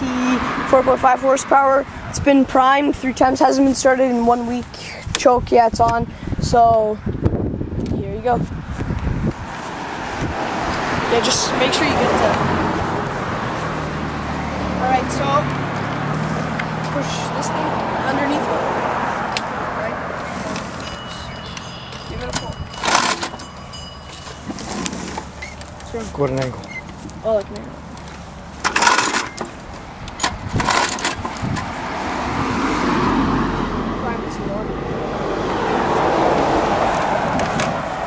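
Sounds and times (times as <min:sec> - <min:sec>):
low engine hum: 0:06.9 - 0:38.0
person speaking: 0:11.0 - 0:12.7, 0:16.2 - 0:23.3, 0:33.8 - 0:34.9.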